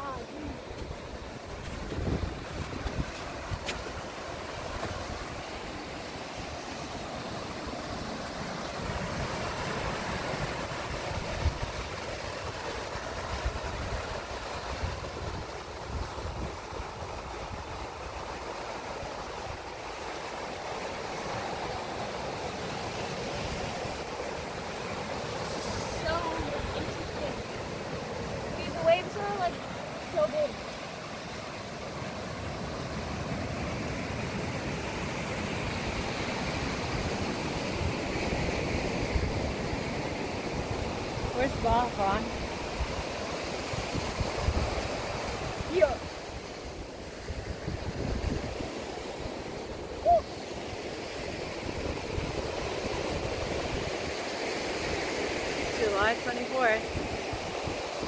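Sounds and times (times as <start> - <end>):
wind noise on microphone: 0.0 - 5.6, 8.7 - 18.4, 35.8 - 50.4, 51.2 - 55.9
ocean surf: 0.0 - 58.0.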